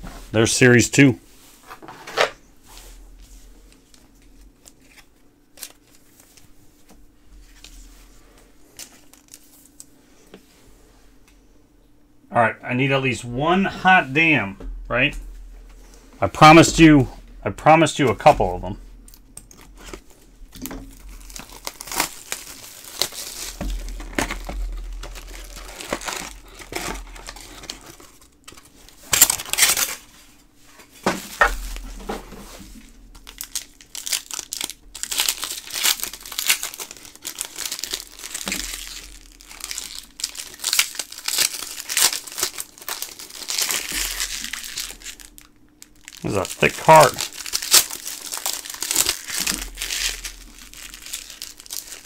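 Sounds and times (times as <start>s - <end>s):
wrappers crinkling and tearing: 3.7s - 6.5s, 8.6s - 9.9s, 17.9s - 30.1s, 33.1s - 52.0s.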